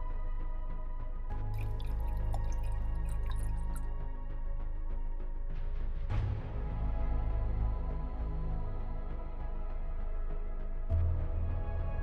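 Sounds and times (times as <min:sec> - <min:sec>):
background music with low tones: 0:00.0 - 0:12.0
beer poured into a glass: 0:01.6 - 0:03.8
fizzing and dripping: 0:01.6 - 0:03.9.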